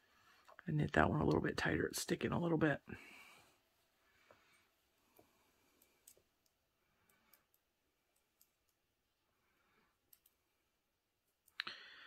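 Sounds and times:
person breathing: 2.9 - 6.1, 9.3 - 10.1, 11.6 - 12.0
knitting needles tapping: 5.1 - 9.0, 10.0 - 10.5.

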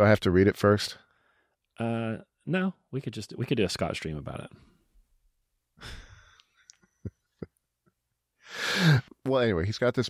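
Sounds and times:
person exhaling: 5.8 - 6.4, 8.4 - 9.1.

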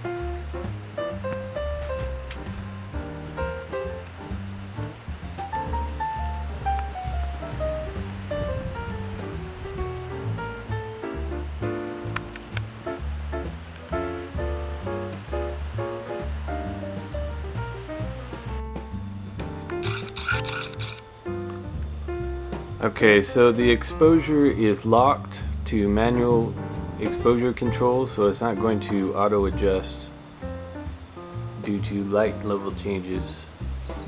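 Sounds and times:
instrumental music: 0.0 - 34.0.

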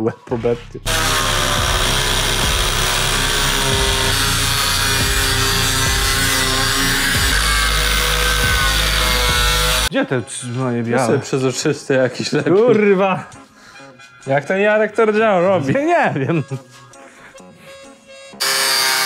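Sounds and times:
angle grinder cutting steel: 0.9 - 9.9, 18.4 - 19.0.

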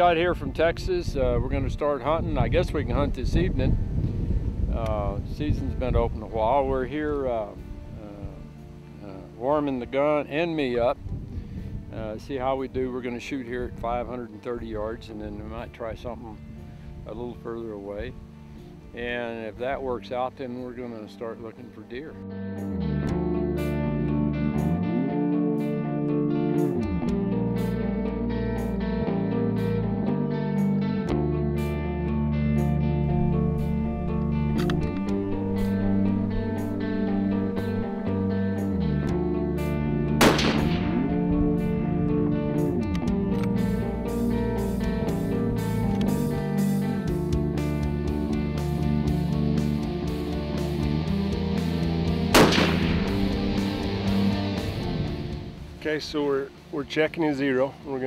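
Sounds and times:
guitar music with beat: 0.0 - 57.7
rifle shot: 40.2 - 41.2, 52.3 - 53.7.

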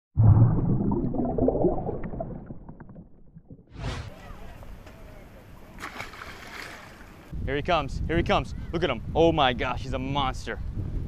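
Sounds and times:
deep underwater bubbling: 0.2 - 3.9.

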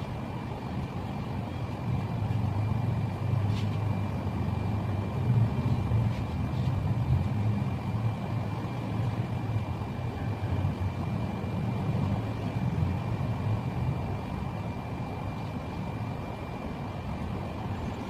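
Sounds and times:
steady low rumble: 0.0 - 18.0.

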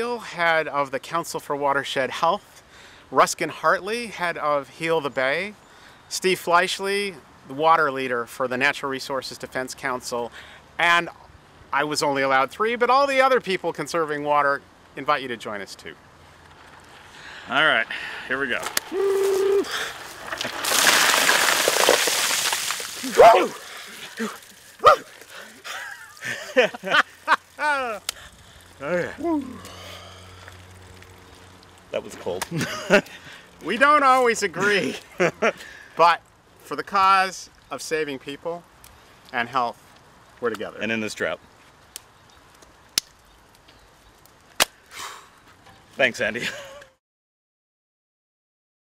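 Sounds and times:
ice water poured and splashing: 19.1 - 29.0.

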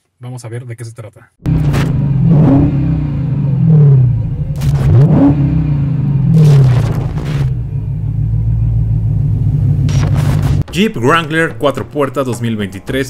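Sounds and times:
car engine revving: 1.4 - 10.6.

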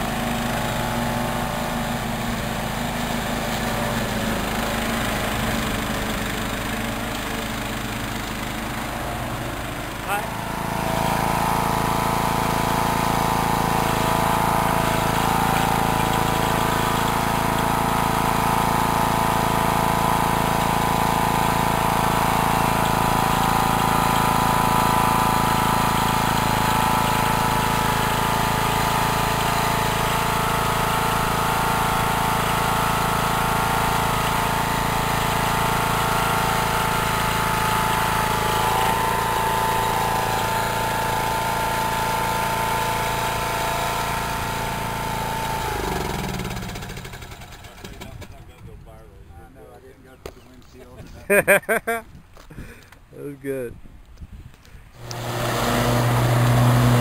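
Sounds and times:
small mower engine running: 0.0 - 48.7, 55.0 - 57.0.

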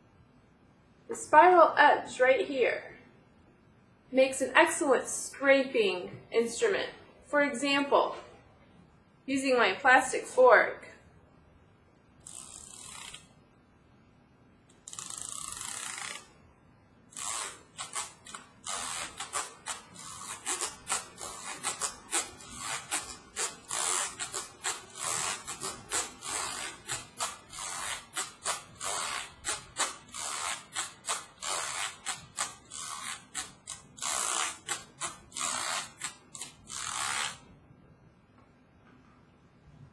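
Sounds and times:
fork scraping spiral binding: 12.2 - 13.3, 14.7 - 16.3, 17.1 - 37.5.

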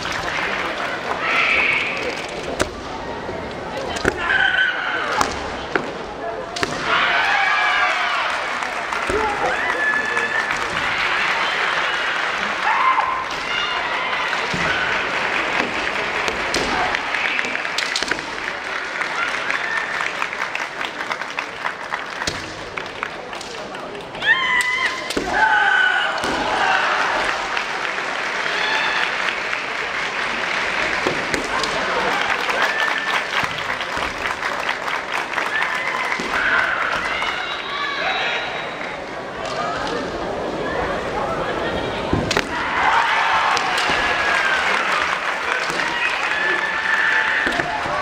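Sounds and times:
crowd applauding: 0.0 - 2.4, 7.1 - 24.2, 26.5 - 38.0, 42.6 - 48.0
spectators clapping: 0.0 - 2.6, 7.0 - 25.1, 26.2 - 37.9, 42.4 - 48.0
faint voices shouting: 3.1 - 5.4, 24.1 - 27.6.

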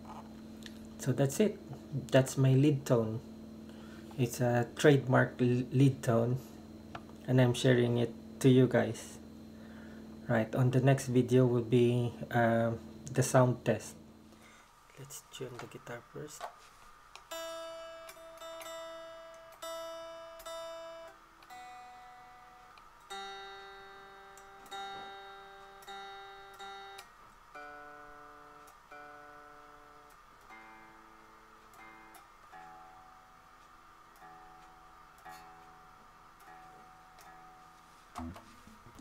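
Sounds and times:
electric guitar strings plucked: 17.2 - 33.2, 36.4 - 39.0.

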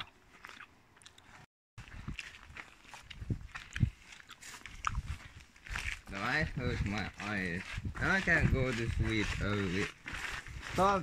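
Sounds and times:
footsteps on grass: 1.8 - 11.0.

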